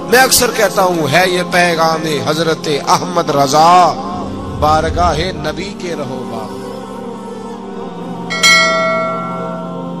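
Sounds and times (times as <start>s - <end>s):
low background drone: 3.2s - 8.4s.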